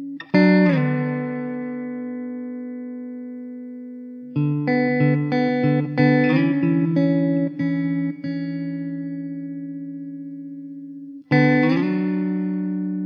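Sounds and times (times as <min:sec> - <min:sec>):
guitar notes ringing: 0:00.0 - 0:13.0.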